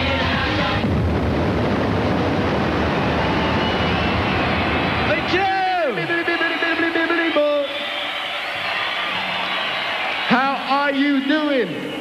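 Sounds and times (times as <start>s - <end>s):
dense roar of noise: 0.8s - 6.2s.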